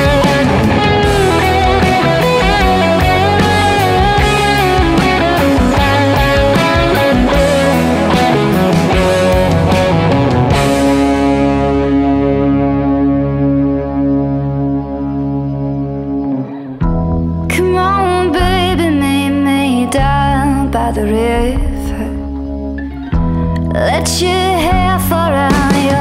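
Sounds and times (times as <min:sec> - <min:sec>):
drums: 0:00.0 - 0:13.0, 0:16.8 - 0:17.6, 0:18.3 - 0:19.3, 0:19.9 - 0:26.0
held guitar chord ringing: 0:00.0 - 0:17.5
bass guitar: 0:00.0 - 0:26.0
electric guitar lead with bends: 0:00.0 - 0:26.0.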